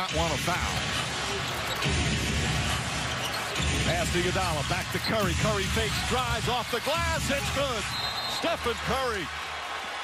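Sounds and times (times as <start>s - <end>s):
arena crowd roar: 0.0s - 10.0s.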